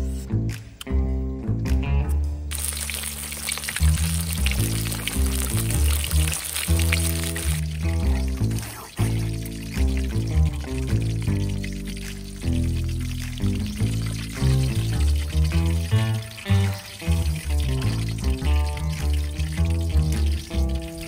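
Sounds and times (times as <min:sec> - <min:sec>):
music with deep bass line: 0:00.0 - 0:21.0
oil frying in a wok: 0:02.5 - 0:21.0.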